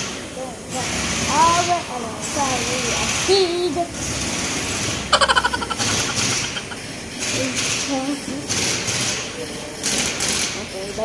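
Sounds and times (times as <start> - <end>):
pneumatic impact wrench rattling: 2.2 - 10.7.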